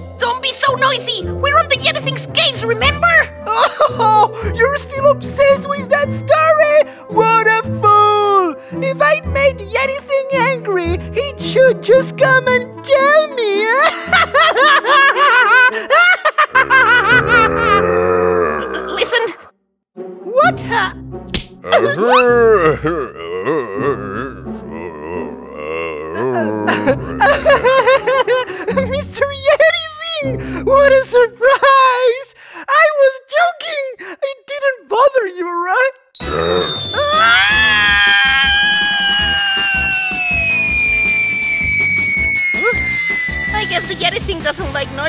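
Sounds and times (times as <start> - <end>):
cartoon character yelling: 16.6 - 19.3, 21.7 - 23.2, 36.4 - 40.4
cartoon slap hit: 21.3 - 21.6
falling whistle sound effect: 36.2 - 44.0
rising sliding tone: 38.8 - 44.0
wavering warbling notes: 39.8 - 44.7.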